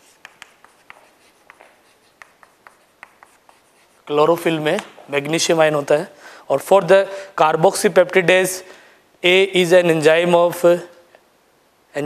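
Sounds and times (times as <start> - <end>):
chalk tapping and scratching: 0.0 - 5.0.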